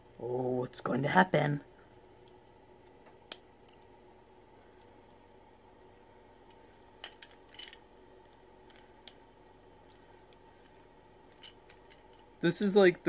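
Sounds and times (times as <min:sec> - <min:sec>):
faint room hum: 0:00.0 - 0:13.0
plastic parts clicking: 0:07.0 - 0:09.2.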